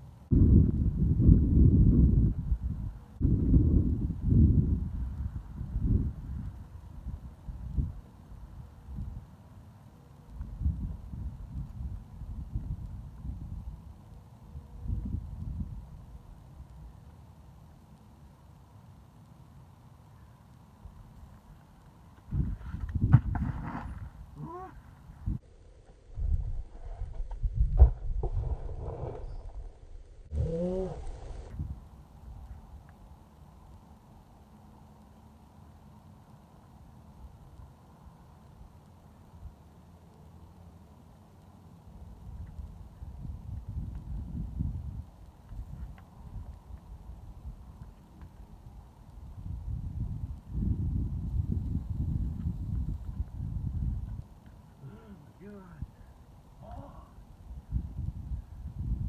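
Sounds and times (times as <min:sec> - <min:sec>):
wind rumbling on microphone: 0:00.0 - 0:09.3, 0:10.3 - 0:17.0, 0:22.2 - 0:33.0, 0:42.0 - 0:59.0
person grunting and yelling with effort: 0:24.4 - 0:24.8, 0:30.3 - 0:31.1, 0:54.8 - 0:55.4, 0:56.6 - 0:57.2.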